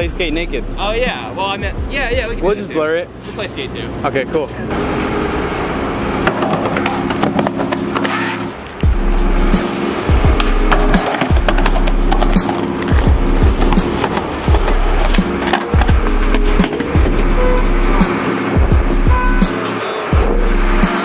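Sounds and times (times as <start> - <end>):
music with bass chords: 0.0 - 2.6, 7.4 - 21.0
skateboard deck clacks: 6.2 - 8.2, 10.4 - 17.2
skateboard wheels rolling: 6.2 - 8.9, 10.3 - 17.6.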